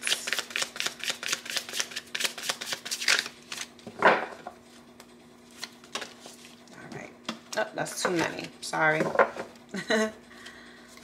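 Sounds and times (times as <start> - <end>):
cards being shuffled: 0.0 - 3.8.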